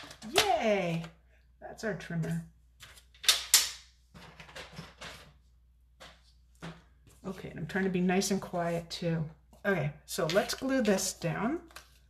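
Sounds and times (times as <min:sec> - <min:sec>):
paper rustling: 0:02.7 - 0:03.4, 0:10.2 - 0:12.0.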